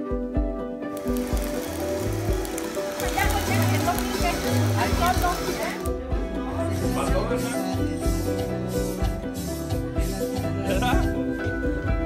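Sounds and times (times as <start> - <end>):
steady hiss: 1.0 - 5.9.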